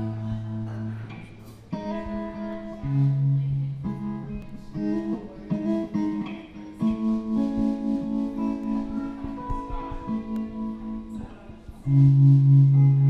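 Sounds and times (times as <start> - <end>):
electric guitar chords: 0.0 - 13.0.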